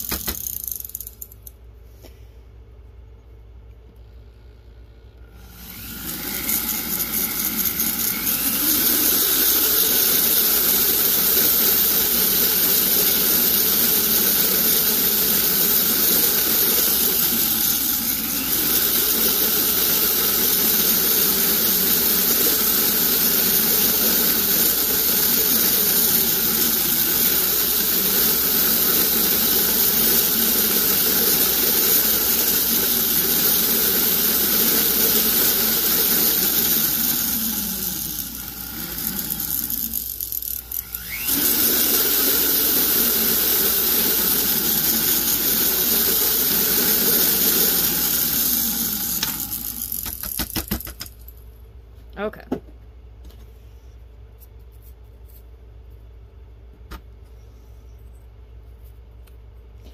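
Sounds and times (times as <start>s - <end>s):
rotary tool whining: 0.0s - 1.5s, 5.2s - 51.1s.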